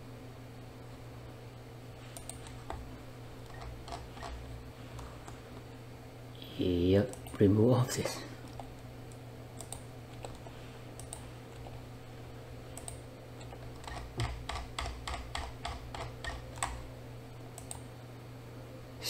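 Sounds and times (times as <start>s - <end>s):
faint steady hum: 0.0s - 19.0s
computer keyboard keys clicking: 2.2s - 2.8s, 3.4s - 5.4s, 7.1s - 7.4s, 8.4s - 11.8s, 12.8s - 16.8s.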